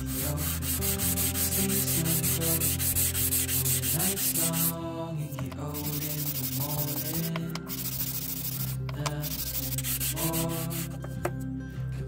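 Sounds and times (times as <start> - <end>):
wood rasping on sandpaper: 0.0 - 4.7, 5.8 - 10.9.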